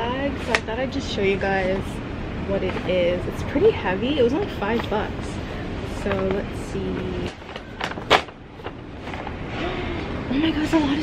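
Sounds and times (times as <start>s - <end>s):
paper bag rustling: 5.9s - 10.0s.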